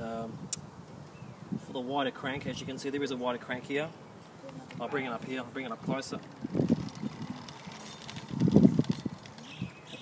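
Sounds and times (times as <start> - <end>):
bicycle bumping and rattling: 5.6 - 10.0.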